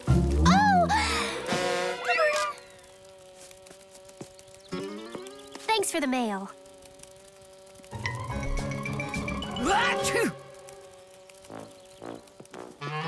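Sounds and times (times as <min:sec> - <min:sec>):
music: 0:00.0 - 0:01.1, 0:08.0 - 0:12.7
cartoon bug wings buzzing: 0:00.0 - 0:13.0.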